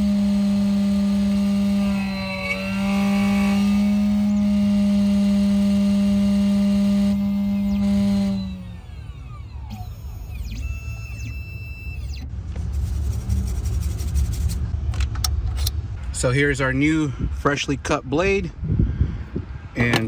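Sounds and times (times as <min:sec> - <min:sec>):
key-cutting machine motor: 0:00.0 - 0:11.6.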